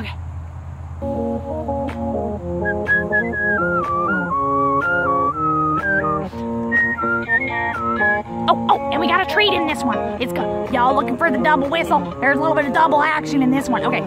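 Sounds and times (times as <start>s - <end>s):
recorded song backing music: 1.0s - 14.0s
woman whistling a melody: 2.5s - 8.6s.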